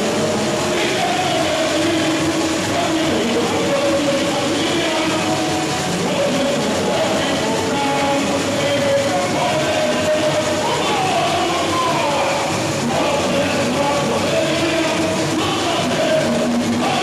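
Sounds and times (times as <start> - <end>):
crowd singing in unison: 0.0 - 17.0
samba percussion band: 0.0 - 17.0.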